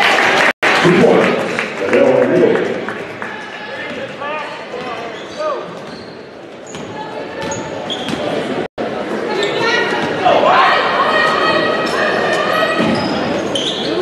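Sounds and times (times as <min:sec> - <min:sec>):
crowd voices in echoing gym: 0:00.0 - 0:14.0
sneakers squeaking on wooden floor: 0:04.7 - 0:08.6, 0:09.3 - 0:10.2, 0:11.4 - 0:14.0.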